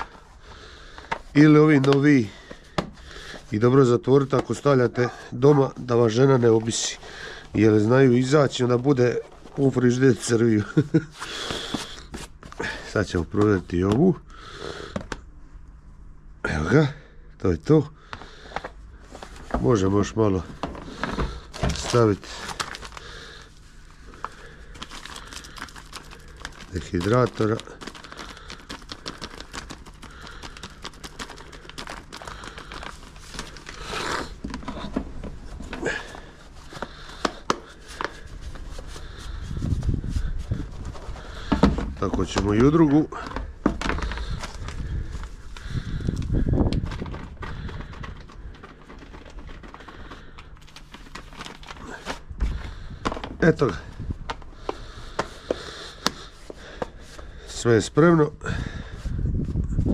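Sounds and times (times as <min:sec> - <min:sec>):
plastic packet crinkling: 0:00.0 - 0:14.2, 0:18.4 - 0:57.4
plastic tubs being handled: 0:00.0 - 0:14.2, 0:18.1 - 0:23.5, 0:24.1 - 0:57.4.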